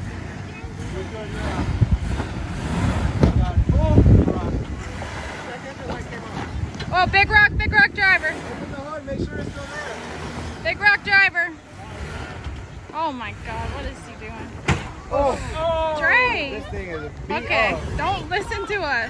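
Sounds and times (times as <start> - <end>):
off-road vehicle engine rumble: 0.0 - 19.0
raised voices: 0.0 - 19.0
wind on microphone: 1.4 - 11.3.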